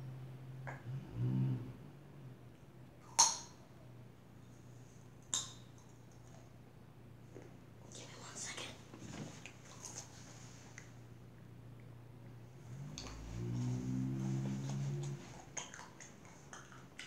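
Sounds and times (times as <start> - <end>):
rustling of movement: 8.8 - 11.0, 12.6 - 16.8.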